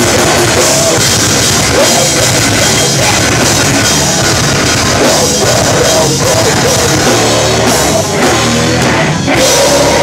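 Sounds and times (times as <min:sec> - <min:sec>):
bass guitar: 0:00.0 - 0:10.0
distorted guitars: 0:00.0 - 0:10.0
pounding drum kit: 0:00.0 - 0:10.0.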